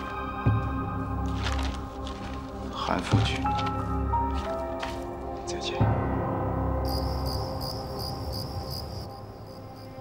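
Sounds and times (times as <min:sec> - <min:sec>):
soft music of low notes: 0:00.0 - 0:10.0
crickets chirping: 0:05.2 - 0:10.0.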